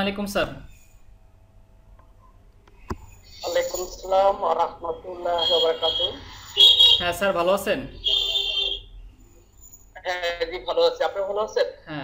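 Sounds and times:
man's voice over video call: 3.3s - 8.8s, 10.0s - 12.0s.

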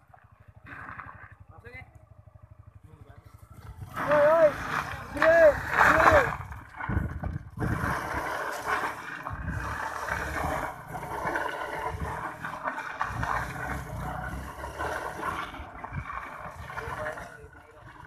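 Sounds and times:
motorcycle tyre spraying dirt: 0.0s - 18.0s.

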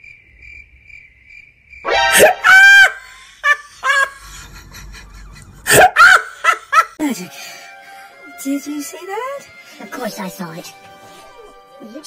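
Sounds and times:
bursts of laughter: 1.9s - 7.0s.

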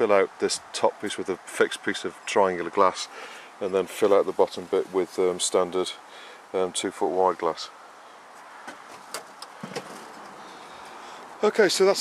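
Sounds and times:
outdoor background hiss: 0.0s - 12.0s.

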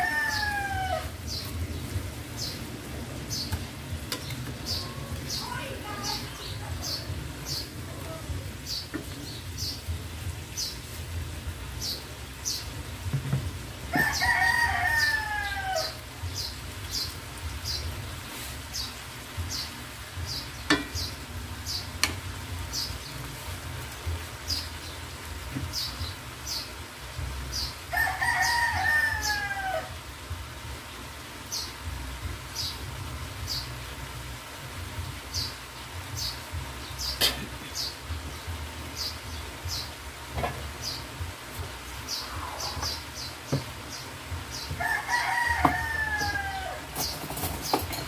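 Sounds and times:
rooster crowing: 0.0s - 1.2s, 13.9s - 16.0s, 27.9s - 30.0s, 44.8s - 47.0s.

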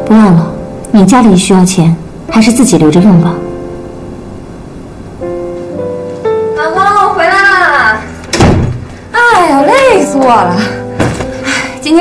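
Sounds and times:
door shutting thud: 8.3s - 8.9s.

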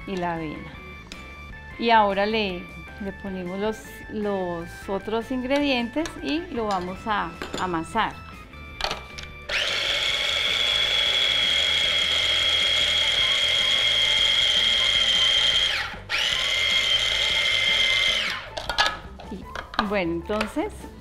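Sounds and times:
electric food chopper whining: 9.4s - 18.7s.

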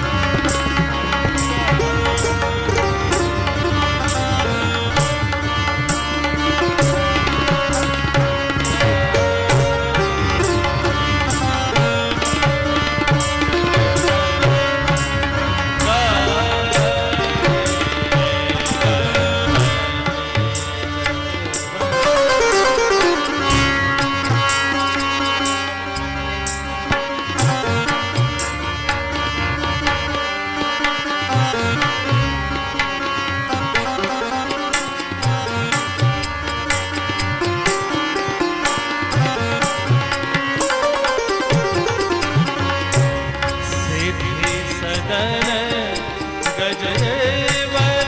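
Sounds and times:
harmonium and keyboard notes: 0.0s - 48.0s
tabla strokes: 0.0s - 48.0s.

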